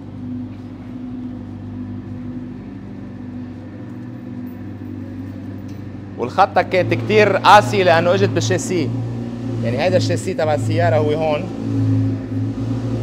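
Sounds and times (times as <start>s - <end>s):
motor humming: 0.0s - 13.0s.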